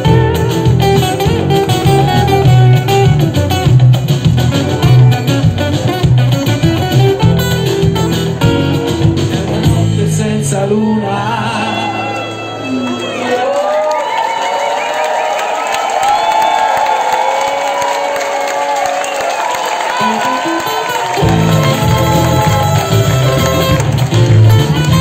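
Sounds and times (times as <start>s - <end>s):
live band with acoustic guitars: 0.0s - 13.4s, 19.4s - 25.0s
audience cheering: 1.5s - 3.1s, 10.7s - 25.0s.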